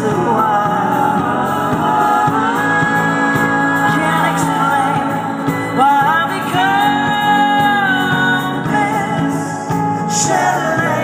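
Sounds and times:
live band playing: 0.0s - 11.0s
woman singing ballad: 0.0s - 11.0s.

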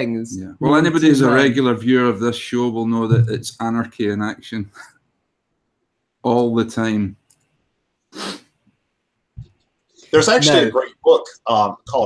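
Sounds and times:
person breathy burst: 8.2s - 8.5s.

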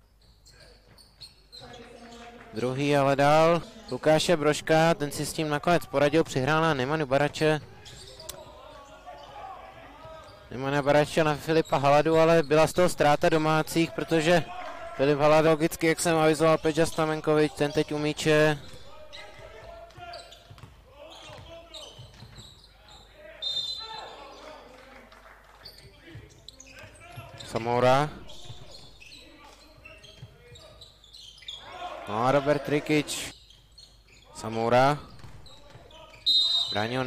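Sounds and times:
shoe squeak: 0.0s - 2.3s, 7.4s - 12.9s, 16.1s - 24.6s, 25.6s - 31.8s, 33.3s - 37.0s
faint hall ambience: 0.0s - 37.0s
players calling out: 1.5s - 24.8s, 25.7s - 33.4s
basketball bouncing on wooden floor: 18.6s - 22.4s, 35.0s - 35.9s.

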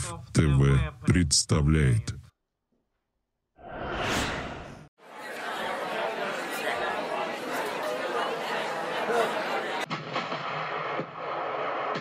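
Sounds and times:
overlapping voices talking: 5.0s - 9.9s.

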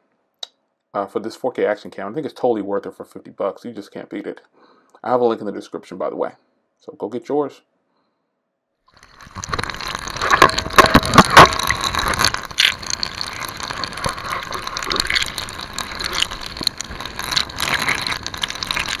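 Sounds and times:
underwater water sloshing: 9.0s - 19.0s
knocks and clatters: 9.1s - 19.0s.

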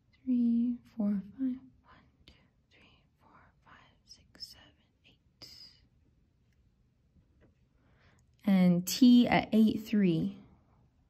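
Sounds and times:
person whispering: 0.2s - 5.9s.

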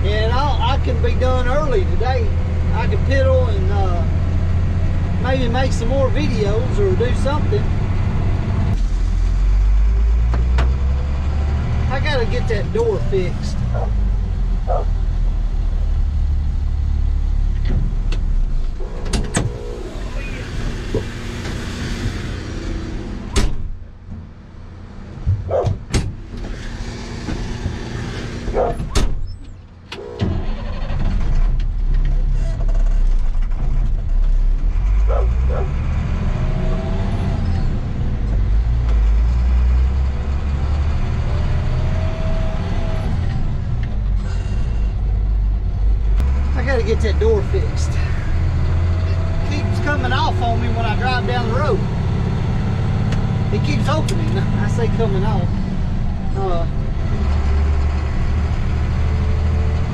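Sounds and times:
engine whine: 0.0s - 59.9s
road noise: 0.0s - 59.9s
truck engine rumble: 0.0s - 59.9s.

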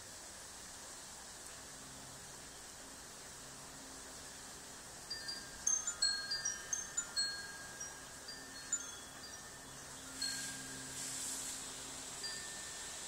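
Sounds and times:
faint steady hiss: 0.0s - 13.0s
wind chimes tinkling: 5.0s - 13.0s.

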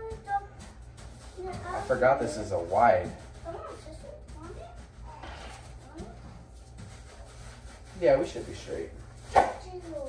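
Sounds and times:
hand smoothing sand in glass tank: 5.5s - 10.0s.

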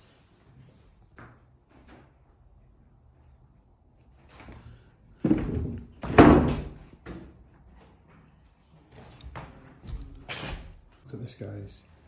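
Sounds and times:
door banging with rattle: 5.3s - 6.8s.

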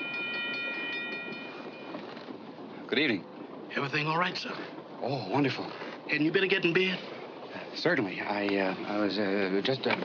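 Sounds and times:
moving train running noise: 0.0s - 10.0s.

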